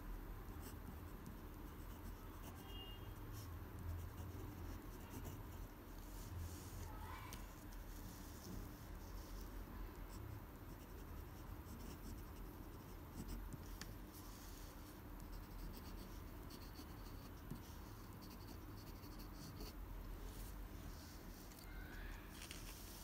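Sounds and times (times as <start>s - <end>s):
pen scratching on paper: 0.6s - 6.8s, 7.6s - 19.8s.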